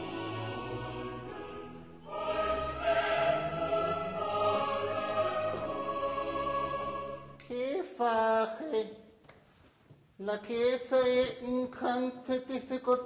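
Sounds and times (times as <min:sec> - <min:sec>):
choir singing long held notes: 0:00.0 - 0:07.4.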